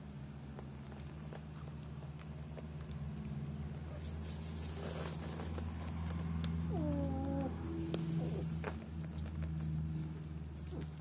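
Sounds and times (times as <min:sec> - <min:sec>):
rustling and scuffs on straw: 0:04.0 - 0:05.7.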